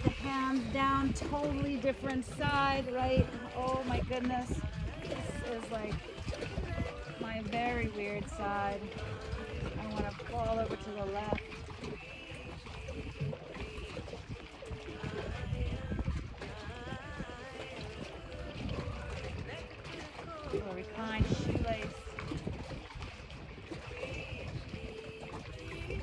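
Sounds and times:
wind rumbling on microphone: 0.0s - 26.0s.

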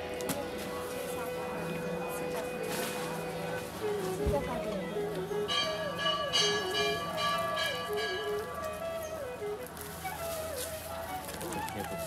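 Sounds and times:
slow single-line melody: 1.1s - 10.3s
metal temple bells ringing: 5.4s - 8.7s.

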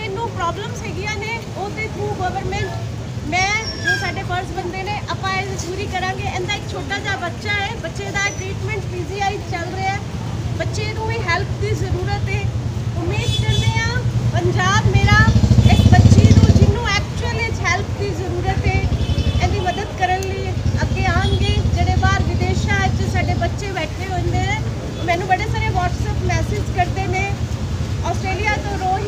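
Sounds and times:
woman talking: 0.0s - 27.4s, 28.0s - 29.0s
vehicle engine running: 11.2s - 29.0s.

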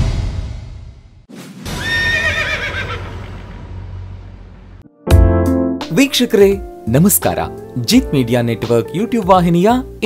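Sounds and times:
horse neighing: 1.7s - 3.2s.

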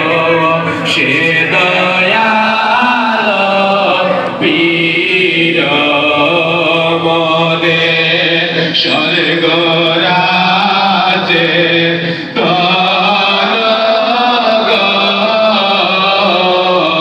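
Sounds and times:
man singing unaccompanied: 0.0s - 17.0s.

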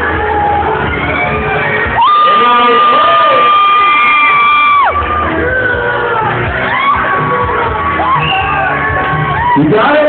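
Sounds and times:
crowd noise: 0.0s - 10.0s
music: 0.0s - 10.0s.

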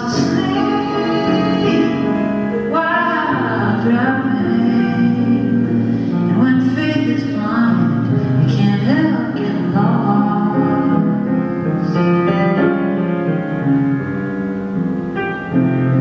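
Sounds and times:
man singing: 0.0s - 2.4s
grand piano chords: 0.0s - 16.0s.

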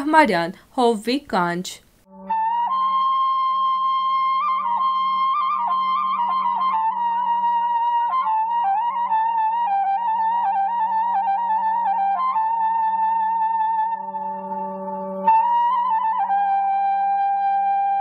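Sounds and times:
high woodwind folk melody: 2.1s - 18.0s.

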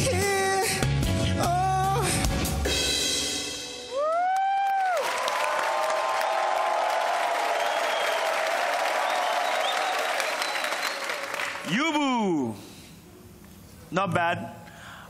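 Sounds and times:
audience applauding and cheering: 3.9s - 11.8s.

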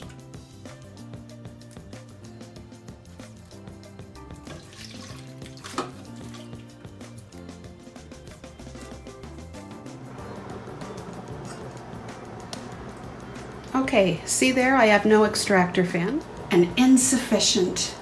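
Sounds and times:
background music: 0.0s - 18.0s
tomatoes pouring into a pot: 4.4s - 6.8s.

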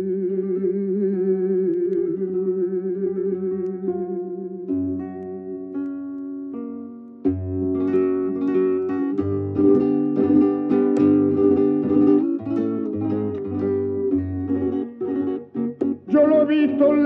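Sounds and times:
flamenco guitar solo: 0.0s - 17.0s.

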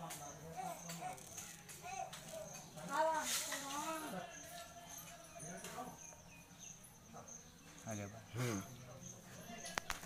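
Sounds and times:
insect chirring: 0.0s - 10.0s.

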